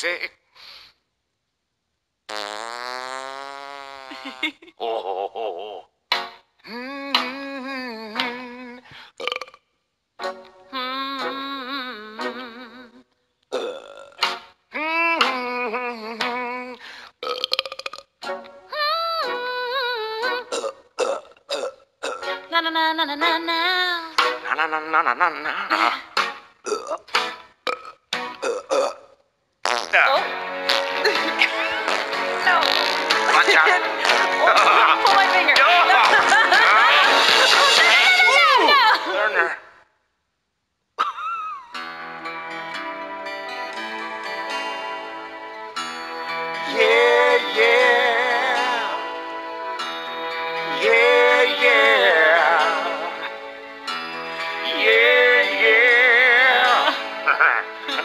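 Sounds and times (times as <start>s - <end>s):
strained burps: 2.3s - 4.4s, 9.2s - 9.6s, 13.5s - 14.2s, 17.2s - 18.1s, 20.5s - 22.4s, 26.6s - 27.0s, 27.6s - 30.1s, 30.7s - 34.9s
long buzzing fart: 2.3s - 4.6s, 29.6s - 30.0s, 30.7s - 33.3s
music with voices: 6.1s - 8.9s, 10.2s - 13.0s, 14.2s - 17.0s, 22.1s - 27.5s, 30.0s - 39.4s, 41.8s - 58.0s.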